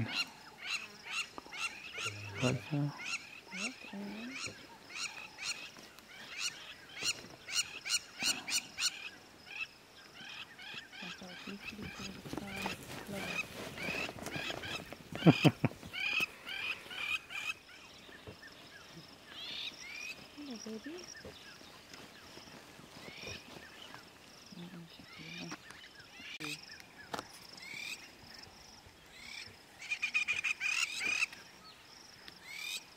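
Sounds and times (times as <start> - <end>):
human laughter: 15.1 - 16.0.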